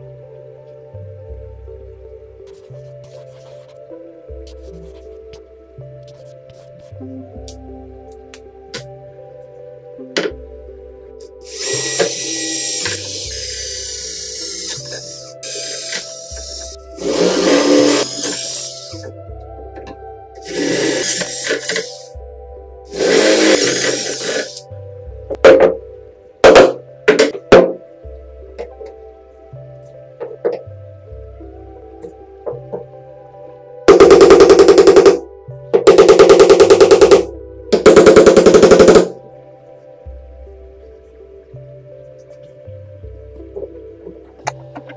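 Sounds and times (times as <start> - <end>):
background music: 0.0 - 44.9
cordless drill boring bamboo: 11.4 - 19.1, 20.4 - 22.1, 22.9 - 24.6.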